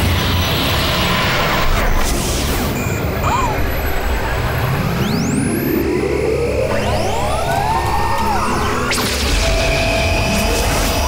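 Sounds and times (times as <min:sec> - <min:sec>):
electronic background music: 0:00.0 - 0:11.0.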